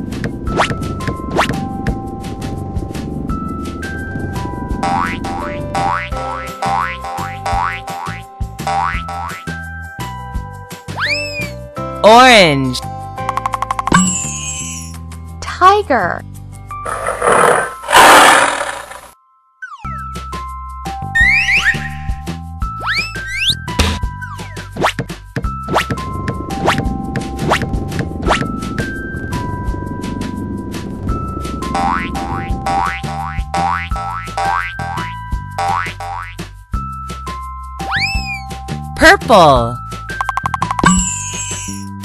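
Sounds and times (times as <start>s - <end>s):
upbeat children's music: 4.8s - 12.9s, 31.8s - 42.0s
cartoon rushing noise bursts: 16.9s - 19.1s.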